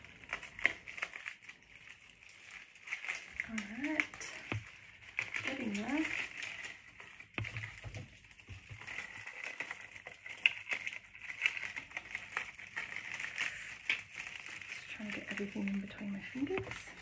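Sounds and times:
dried stems rustling and crackling: 0.0s - 17.0s
stem snapping: 0.0s - 17.0s.

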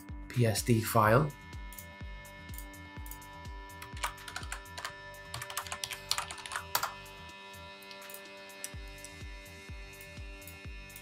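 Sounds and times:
soft background music with beat: 0.0s - 11.0s
computer keyboard typing: 3.8s - 7.0s, 7.8s - 9.1s.

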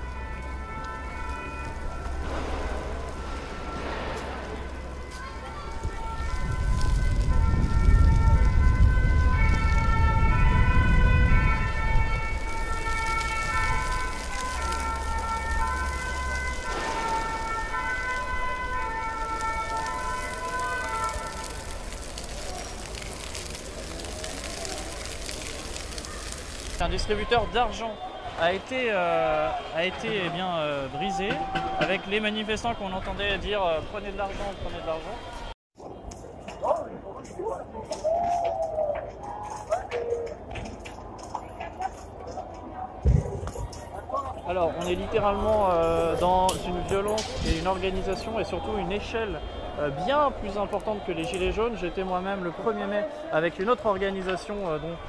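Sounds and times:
emergency vehicle siren: 0.0s - 35.6s, 44.5s - 55.0s.

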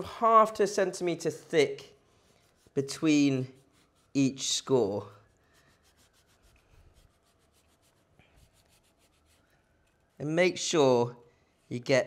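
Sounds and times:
cleaver scratching pork skin: 2.3s - 4.5s, 5.5s - 10.3s.

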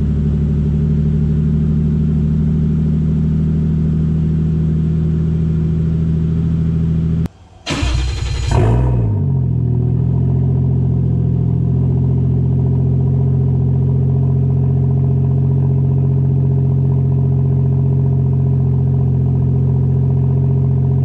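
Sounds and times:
car engine idling and revving: 0.0s - 21.0s.

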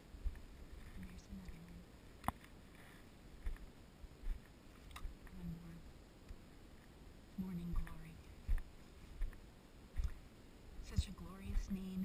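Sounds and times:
footsteps soft thumps: 2.3s - 5.2s, 7.6s - 11.9s.

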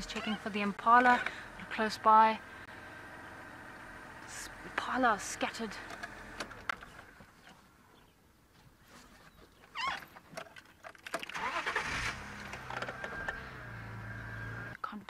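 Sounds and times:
vehicle engine starting and running: 0.0s - 7.5s, 10.4s - 14.8s.

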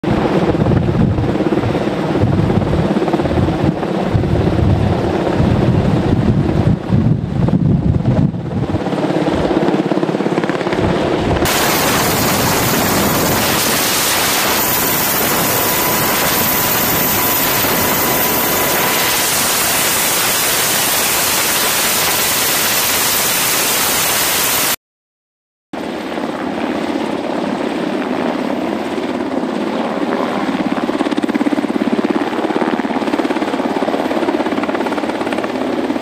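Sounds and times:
helicopter rotor beat: 0.0s - 24.8s, 25.8s - 36.0s
rotor wind and engine hiss: 0.1s - 24.8s.

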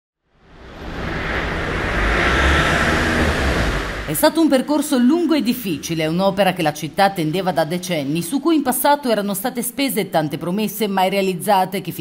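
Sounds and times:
tyres hissing on wet road: 0.4s - 4.2s
low engine rumble: 0.4s - 4.4s.

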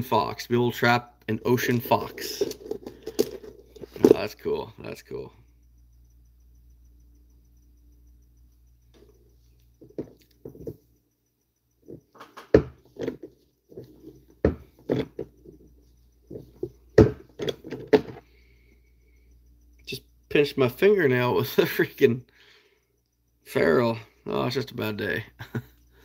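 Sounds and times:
small objects clicking and knocking: 1.6s - 4.3s.

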